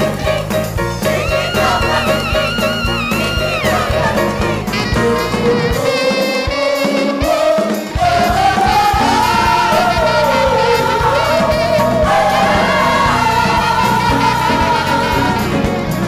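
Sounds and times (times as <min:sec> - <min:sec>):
gospel choir singing: 0:00.0 - 0:16.0
keyboard and band: 0:00.0 - 0:16.0.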